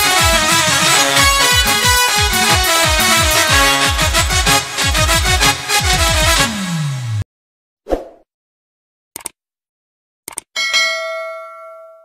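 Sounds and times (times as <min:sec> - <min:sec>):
bright bell chime: 0:10.6 - 0:12.0.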